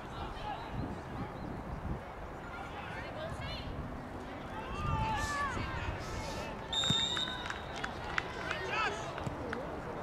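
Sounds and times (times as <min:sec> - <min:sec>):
high whistle tone: 0:06.7 - 0:07.4.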